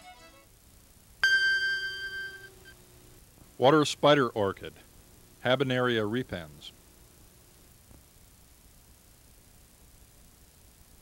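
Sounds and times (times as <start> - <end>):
bell chime ringing: 1.2 - 2.5.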